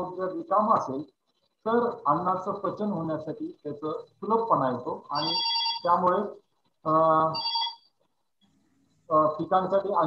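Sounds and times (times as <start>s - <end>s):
man talking: 0.0s - 7.4s, 9.1s - 10.0s
telephone ringing: 5.1s - 6.0s, 7.3s - 7.9s.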